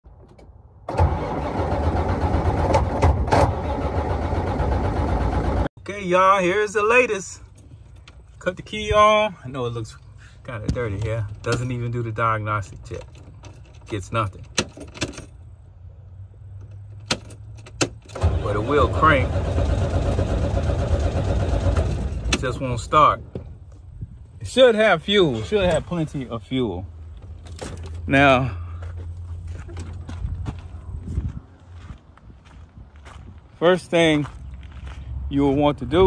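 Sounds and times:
starter motor cranking diesel engine: 0:00.9 - 0:05.7, 0:18.0 - 0:22.6.

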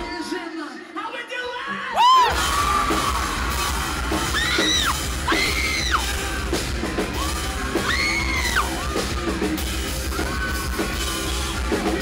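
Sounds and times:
live metal band playing: 0:02.2 - 0:12.0.

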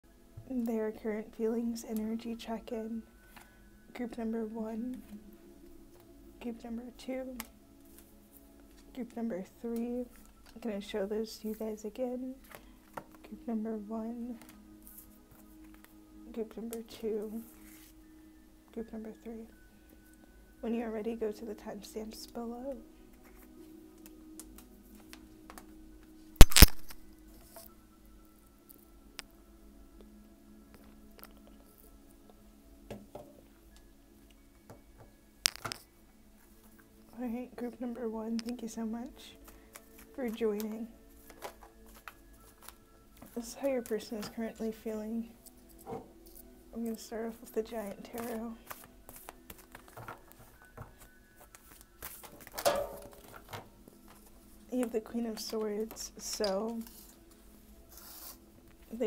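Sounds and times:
faint steady hum: 0:00.0 - 0:59.0
cards swishing: 0:26.4 - 0:27.0, 0:57.9 - 0:58.4
cards rustling and tapping: 0:39.4 - 0:44.4, 0:48.1 - 0:59.0.

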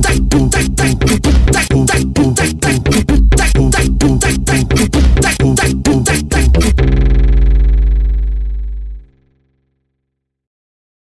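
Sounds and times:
deep sustained bass note: 0:06.3 - 0:09.6.

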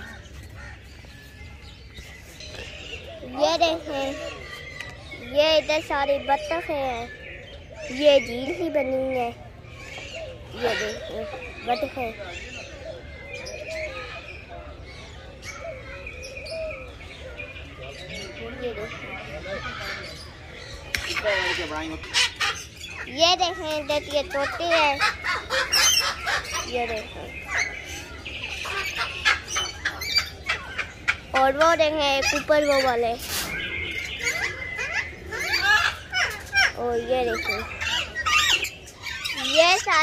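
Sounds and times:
birds chirping: 0:00.0 - 0:40.0
birds cooing: 0:00.0 - 0:40.0
parakeets screeching: 0:00.0 - 0:40.0.

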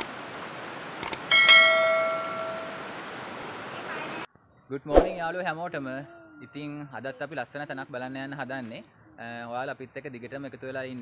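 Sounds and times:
rocky stream rushing: 0:00.0 - 0:04.3
bell chime: 0:01.3 - 0:02.9.

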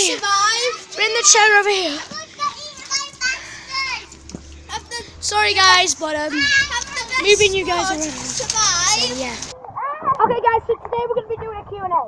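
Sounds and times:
girl talking: 0:00.0 - 0:04.1, 0:04.7 - 0:12.0
children's voices: 0:00.0 - 0:12.0.

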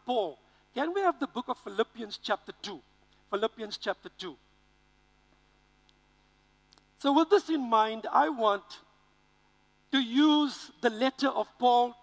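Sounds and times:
faint mains hum: 0:00.0 - 0:12.0.

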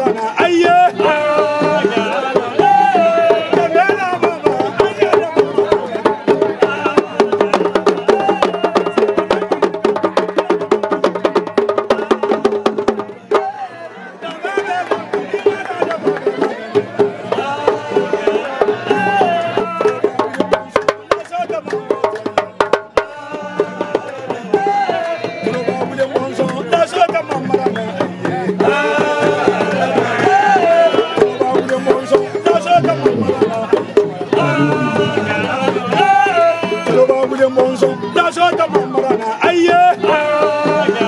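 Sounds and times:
voices singing: 0:00.0 - 0:41.0
drum struck with stick: 0:28.1 - 0:37.2.

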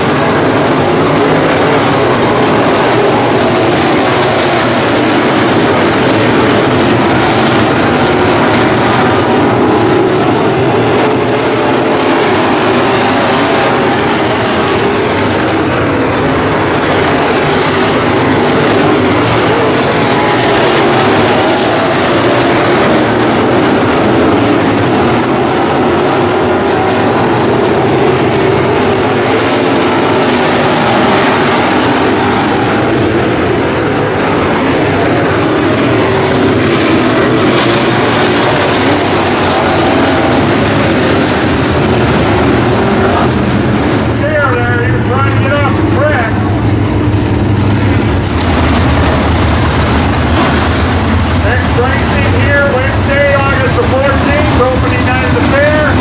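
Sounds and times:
race car engines roaring: 0:00.0 - 0:56.0.

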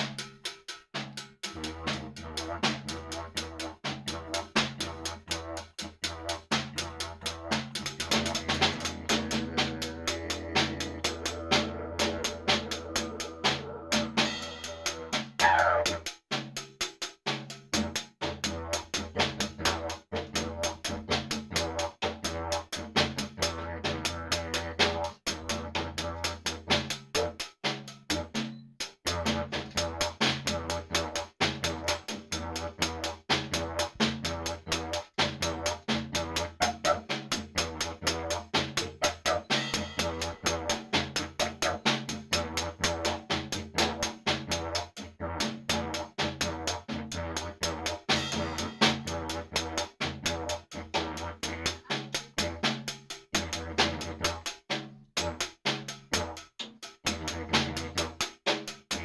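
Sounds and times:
snare drum rhythm: 0:00.0 - 0:59.0
didgeridoo drone: 0:07.0 - 0:15.9.

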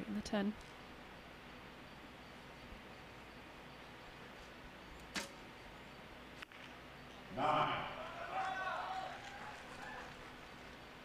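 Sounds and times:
bowstring snapping: 0:05.0 - 0:05.4.

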